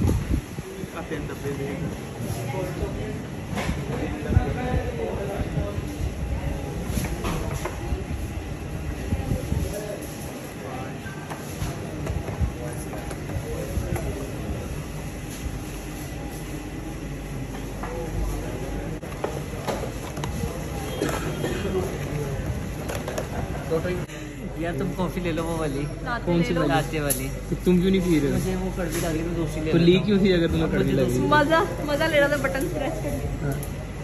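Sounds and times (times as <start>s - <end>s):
low rumbling background noise: 0.0s - 34.0s.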